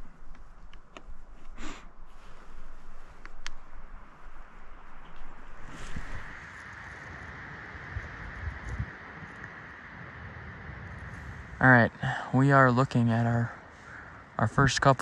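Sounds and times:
wind buffeting microphone: 0:05.2 - 0:15.0.

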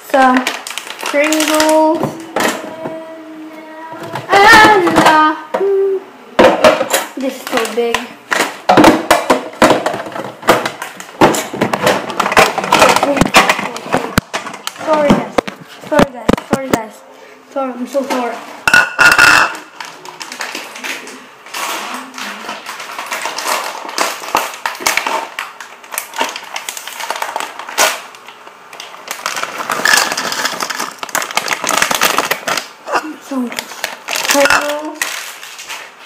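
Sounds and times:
snack packaging crinkling: 0:00.2 - 0:02.6, 0:19.0 - 0:36.0.

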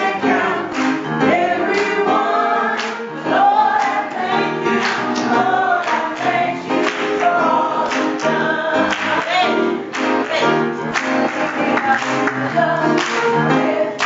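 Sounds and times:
women singing into microphones: 0:00.0 - 0:09.8, 0:11.5 - 0:14.0
congregation singing gospel: 0:00.0 - 0:14.0
keyboard accompaniment: 0:00.0 - 0:14.0
hand clapping: 0:00.7 - 0:01.0, 0:02.8 - 0:03.0, 0:04.8 - 0:08.3, 0:08.9 - 0:14.0.

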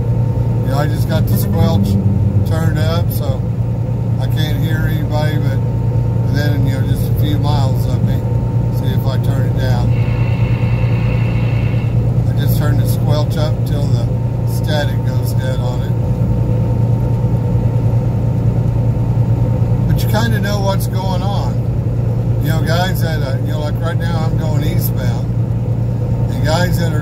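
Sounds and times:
truck diesel engine drone: 0:00.0 - 0:27.0
person talking: 0:00.6 - 0:03.4.

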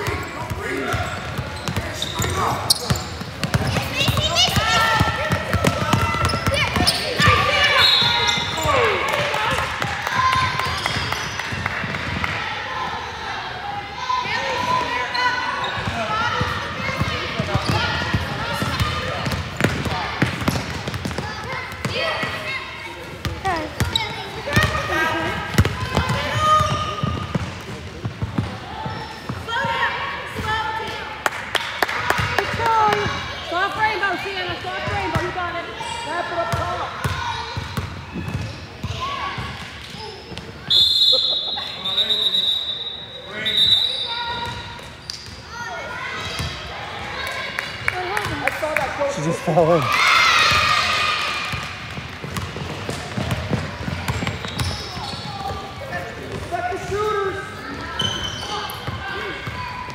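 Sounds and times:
chatter echoing in a gym: 0:00.0 - 0:59.9
referee's whistle blasts: 0:07.7 - 0:08.6, 0:40.6 - 0:44.4.

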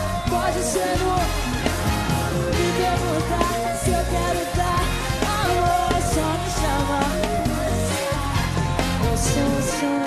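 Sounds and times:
live band playing pop music: 0:00.0 - 0:10.0.

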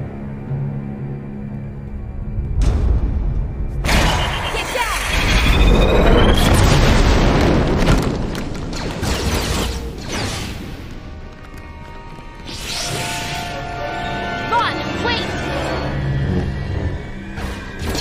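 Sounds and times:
explosion boom and rumble: 0:02.6 - 0:11.3
dramatic orchestral music: 0:10.0 - 0:18.0.

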